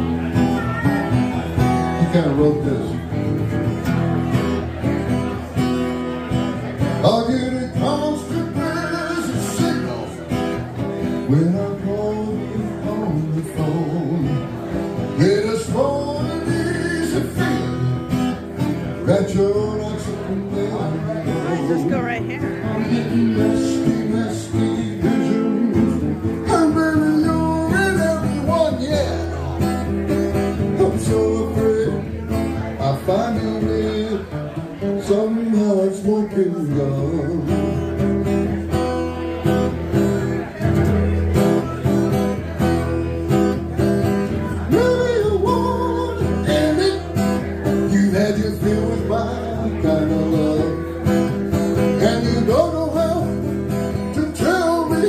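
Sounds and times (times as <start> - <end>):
acoustic guitar strummed: 0.0 - 55.0
man singing: 0.2 - 3.2, 6.6 - 38.0, 43.0 - 55.0.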